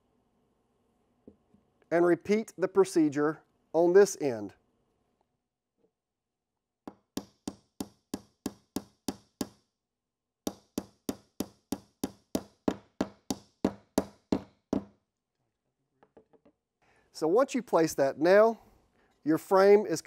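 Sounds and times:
hammer driving nail into wood: 6.9 - 9.6, 10.5 - 15.0.

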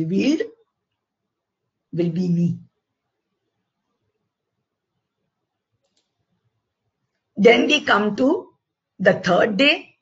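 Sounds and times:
computer mouse clicking: 5.7 - 6.4.

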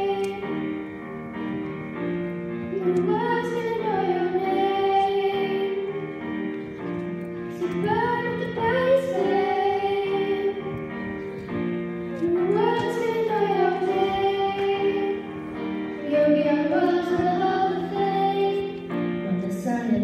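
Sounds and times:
electric keyboard chords: 0.0 - 20.0
girls singing pop song: 2.7 - 6.1, 7.6 - 10.9, 12.1 - 20.0.

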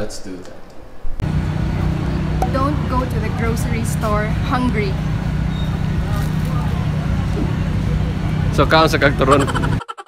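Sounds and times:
road traffic rumble: 1.2 - 9.8
vehicle engines idling: 1.2 - 9.8
faint voices: 2.0 - 9.8.

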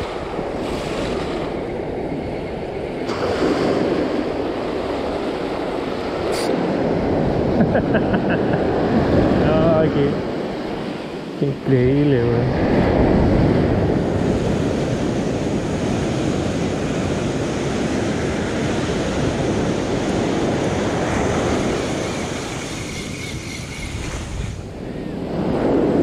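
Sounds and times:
ocean surf washing on sand: 0.0 - 23.2.

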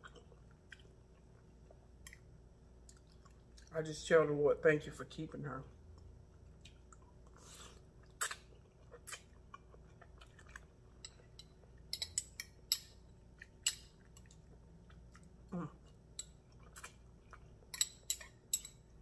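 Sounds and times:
wet chewing clicks and smacks: 0.0 - 3.7, 5.9 - 7.4, 8.0 - 11.9, 13.3 - 18.4.

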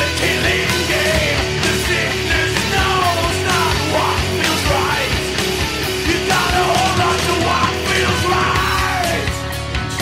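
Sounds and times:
distorted guitars: 0.0 - 10.0
drums: 0.0 - 10.0.

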